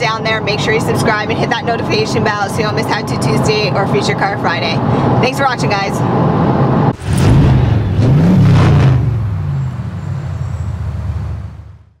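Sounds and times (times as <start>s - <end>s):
car engine revving: 0.1s - 12.0s.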